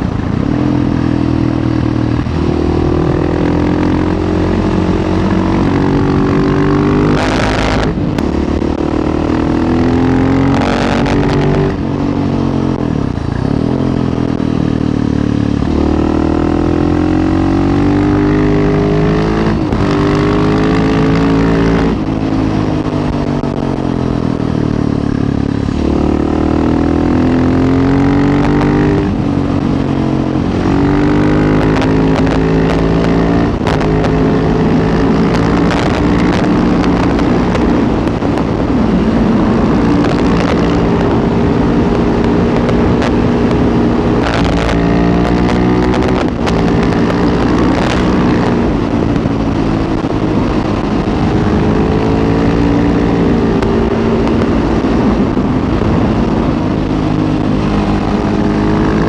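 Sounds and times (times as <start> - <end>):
motorcycle engine accelerating: 0.0 - 59.0.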